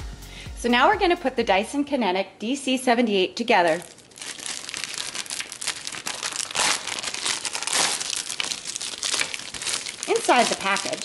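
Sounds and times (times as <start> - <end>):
plastic bag crinkling: 3.6 - 11.0.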